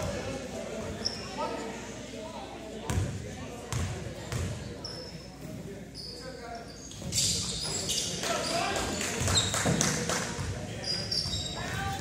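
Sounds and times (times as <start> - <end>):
voices of players and spectators: 0.0 - 12.0
sneaker squeaks: 0.9 - 1.6, 3.7 - 9.9, 10.8 - 12.0.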